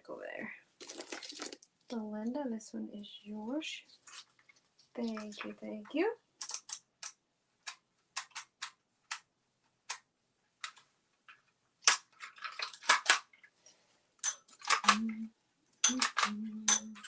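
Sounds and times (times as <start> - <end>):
jewelry clicking and clattering: 0.8 - 1.7, 6.4 - 9.3, 10.6 - 13.5, 14.2 - 15.1, 15.8 - 17.0.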